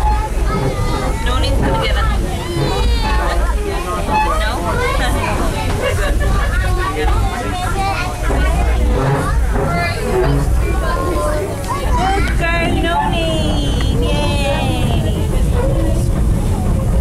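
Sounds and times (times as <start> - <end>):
passengers chattering: 0.0 - 17.0
train carriage rumbling: 0.0 - 17.0.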